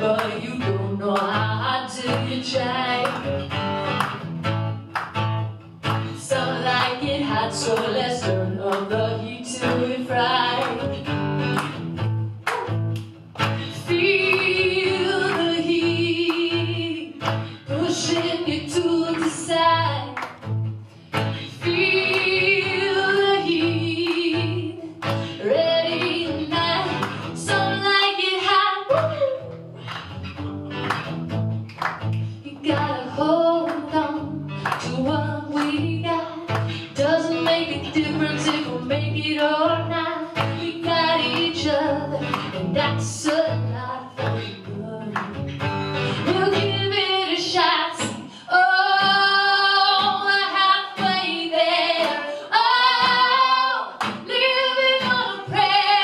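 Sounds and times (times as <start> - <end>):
woman singing: 0.0 - 3.4, 6.1 - 11.2, 13.6 - 20.4, 21.4 - 29.6, 32.4 - 56.0
acoustic guitar strumming: 0.0 - 56.0.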